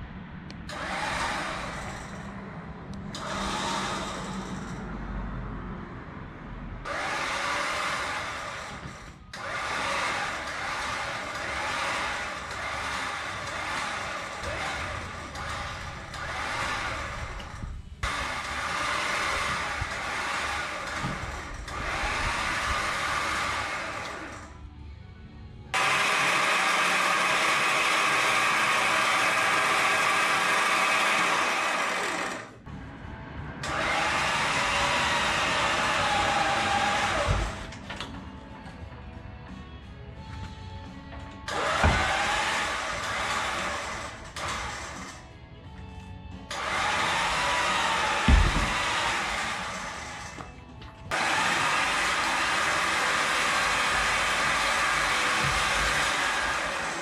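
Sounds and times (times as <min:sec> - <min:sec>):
electric winch motor whining: 0:00.7 - 0:02.4, 0:03.1 - 0:05.1, 0:06.8 - 0:24.7, 0:25.7 - 0:32.8, 0:33.6 - 0:38.2, 0:41.3 - 0:45.4, 0:46.4 - 0:57.0.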